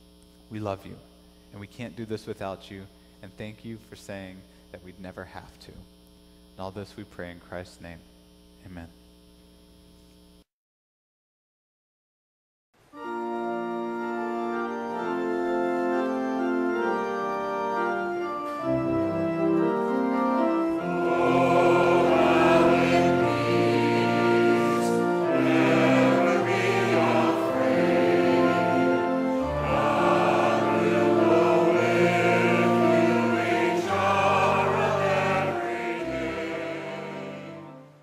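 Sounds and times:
organ chords: 12.8s - 38.0s
choir singing: 18.7s - 38.0s.

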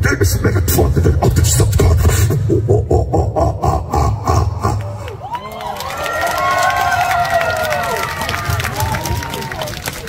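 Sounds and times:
vocal beatboxing: 0.0s - 5.2s
audience cheering and shouting: 4.7s - 10.0s.

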